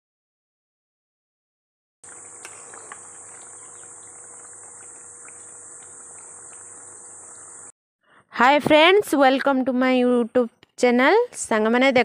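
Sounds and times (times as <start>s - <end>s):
insects chirring: 2.0s - 7.7s.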